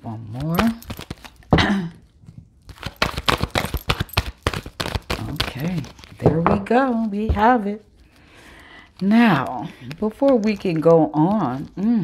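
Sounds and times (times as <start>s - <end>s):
cards being shuffled by hand: 0.2s - 1.5s, 2.6s - 12.0s.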